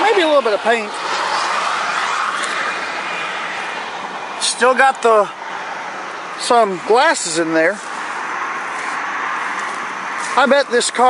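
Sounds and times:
vehicle tyre noise passing: 0.0 - 11.0.

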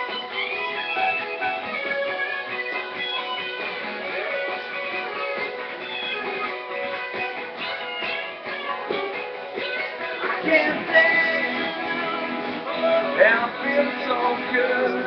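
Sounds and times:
lead guitar line: 0.0 - 15.0
strummed guitar chords: 0.0 - 15.0.

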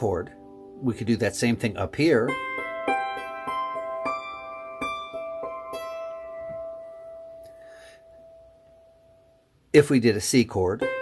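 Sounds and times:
hammered dulcimer notes: 0.0 - 9.0, 10.8 - 11.0.

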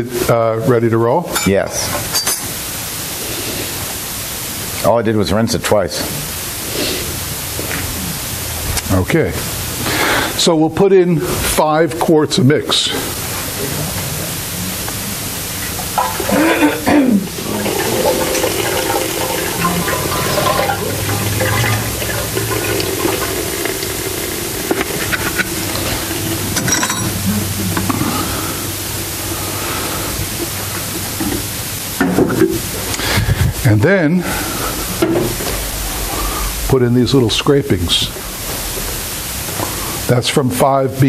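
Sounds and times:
low machine hum: 4.1 - 40.6
liquid pouring into metal hopper: 17.3 - 26.6.

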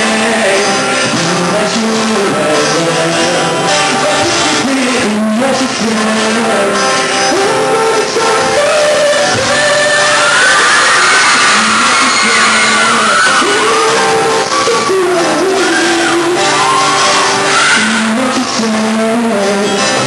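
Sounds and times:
man singing: 0.0 - 20.0
strummed acoustic guitar: 0.0 - 20.0.

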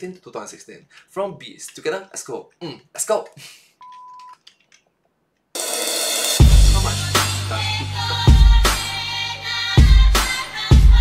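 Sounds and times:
test-tone beep: 3.8 - 4.4
bright cymbal-heavy music: 5.6 - 11.0.

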